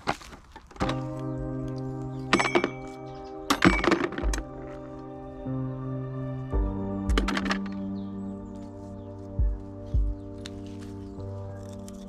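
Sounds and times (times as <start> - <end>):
background music of held chords: 0.8 - 12.0.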